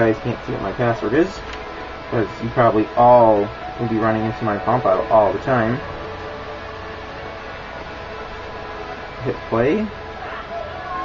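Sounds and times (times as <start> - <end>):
background hiss and hum: 0.0 - 11.0
faint steady tones: 0.0 - 11.0.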